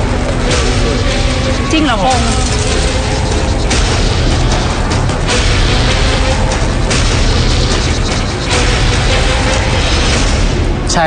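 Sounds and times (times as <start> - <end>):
dramatic background score: 0.0 - 11.0.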